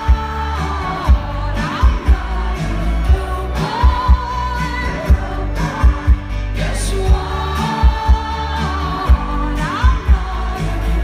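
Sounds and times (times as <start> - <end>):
live pop song over pa: 0.0 - 11.0
woman singing lead vocal: 0.0 - 11.0.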